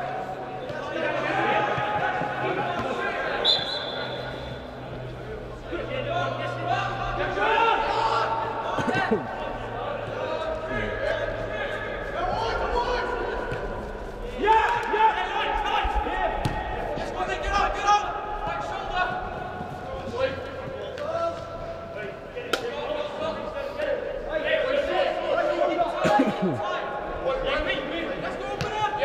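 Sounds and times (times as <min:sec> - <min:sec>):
players shouting in echoing hall: 0:00.0 - 0:29.0.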